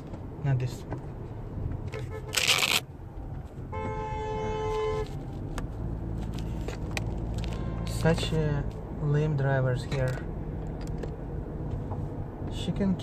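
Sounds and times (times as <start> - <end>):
road noise inside moving car: 0.0 - 13.0
car horn: 1.9 - 2.8, 3.7 - 5.1, 7.4 - 8.2.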